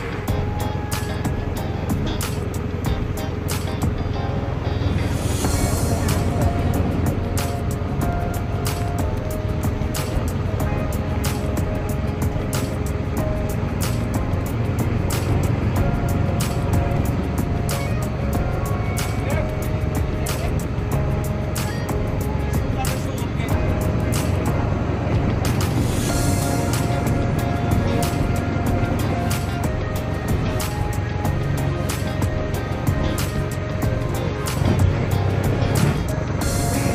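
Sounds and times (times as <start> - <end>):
boat engine running: 0.0 - 36.9
music playing: 0.0 - 36.9.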